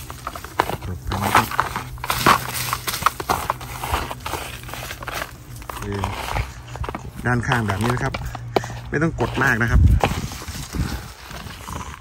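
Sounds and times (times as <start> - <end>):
soil crumbling: 0.0 - 12.0
soil knocking against plastic bucket: 0.0 - 12.0.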